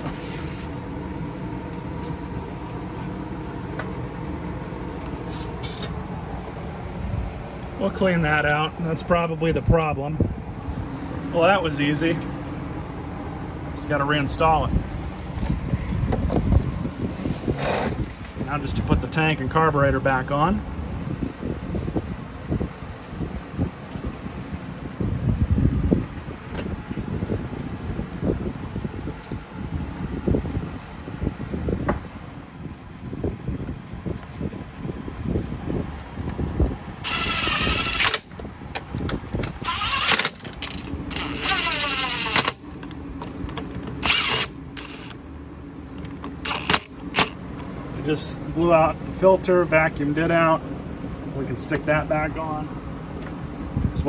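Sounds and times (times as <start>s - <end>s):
cordless driver running: 37.0s - 38.4s, 39.0s - 42.9s, 43.8s - 45.2s, 46.1s - 47.4s.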